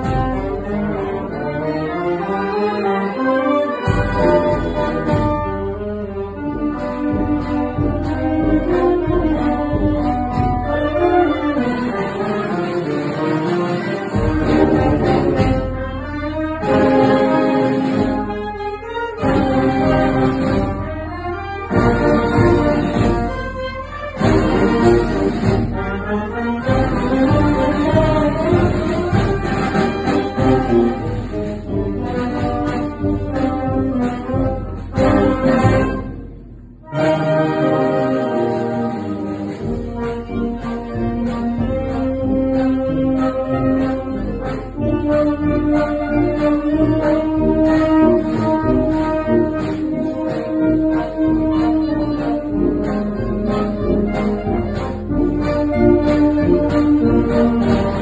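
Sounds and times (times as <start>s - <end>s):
wind band playing a march: 0.0s - 58.0s.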